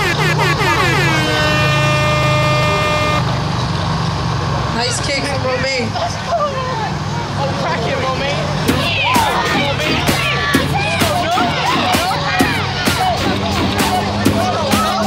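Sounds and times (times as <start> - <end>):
people shouting and cheering: 0.0 - 3.2, 8.6 - 15.0
horn blast: 0.0 - 3.3.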